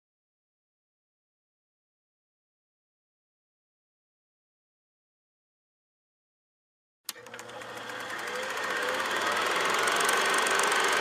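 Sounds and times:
projector click: 7.1 - 10.5
film projector clattering: 7.1 - 11.0.

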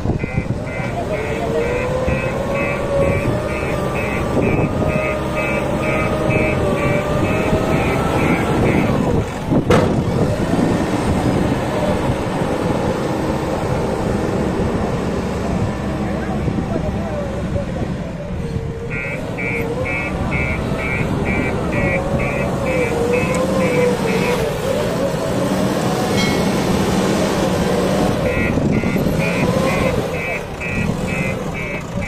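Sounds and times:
diesel engine under load: 0.0 - 32.0
high warning beeper: 0.2 - 9.0, 18.9 - 24.4, 28.2 - 32.0.

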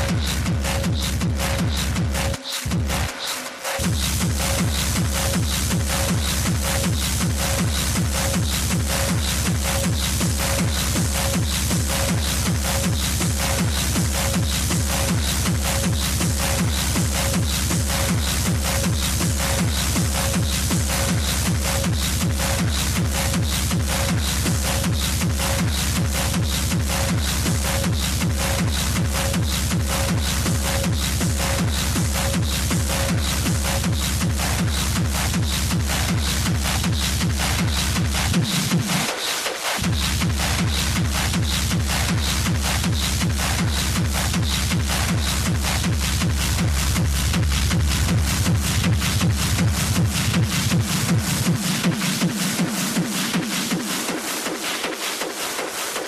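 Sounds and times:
kick drum beat: 0.0 - 3.2, 3.8 - 56.0
heavy bass: 0.0 - 56.0.

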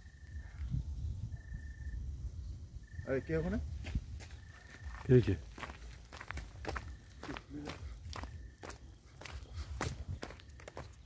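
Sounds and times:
footsteps crunching dry leaves: 3.8 - 11.0.

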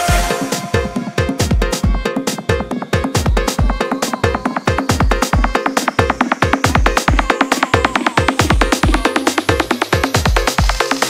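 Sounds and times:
electronic dance beat: 0.0 - 11.0.

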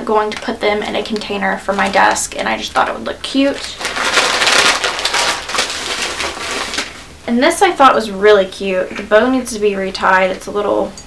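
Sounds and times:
plastic bag rustling: 2.8 - 7.2.

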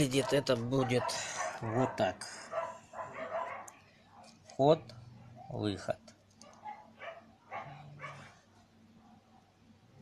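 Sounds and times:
dog barking faintly: 0.0 - 5.8, 6.4 - 9.6.

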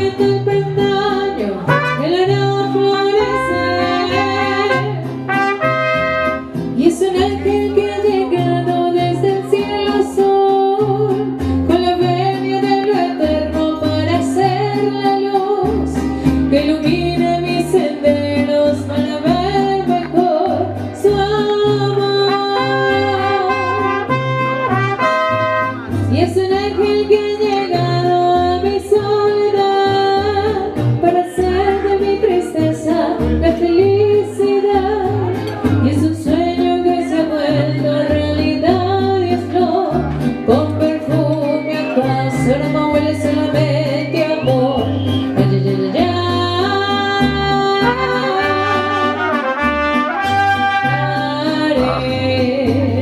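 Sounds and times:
bass line: 0.0 - 12.4, 15.6 - 53.0
guitars: 0.0 - 53.0
person singing: 0.0 - 53.0
trumpets: 1.7 - 2.4, 3.2 - 6.6, 22.3 - 25.9, 47.8 - 51.1.

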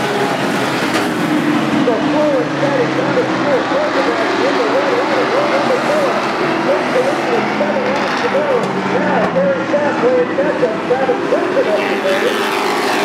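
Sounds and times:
race truck engines roaring: 0.0 - 13.0
person speaking: 1.8 - 12.3.

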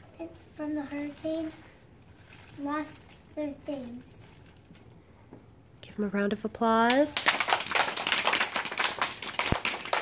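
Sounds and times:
children applauding: 7.2 - 10.0.

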